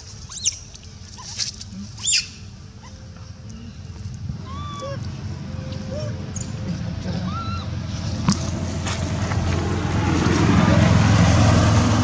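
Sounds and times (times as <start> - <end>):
infant monkey squealing: 0.3 - 0.6, 2.0 - 3.0, 4.4 - 5.0, 5.9 - 6.2, 7.1 - 7.7.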